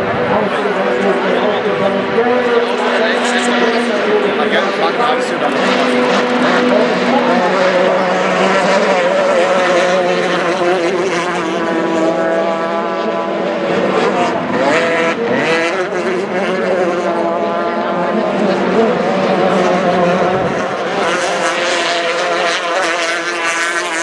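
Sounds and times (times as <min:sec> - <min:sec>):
racing boat engines at high revs: 0:00.0 - 0:24.0.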